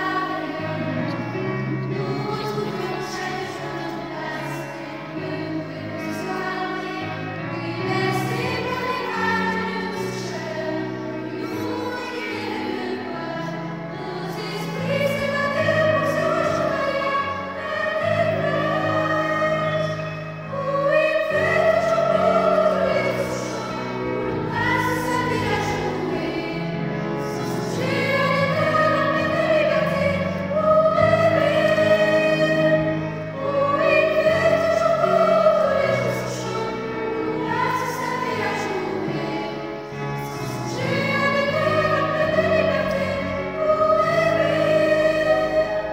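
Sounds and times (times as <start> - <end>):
choir singing held notes: 0.0 - 45.9.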